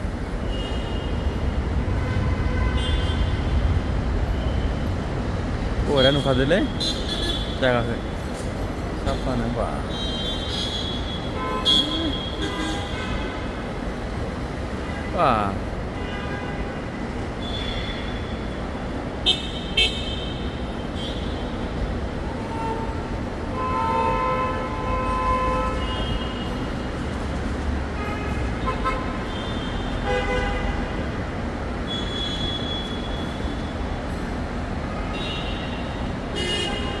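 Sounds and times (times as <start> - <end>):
low rumble of vehicles: 0.0 - 37.0.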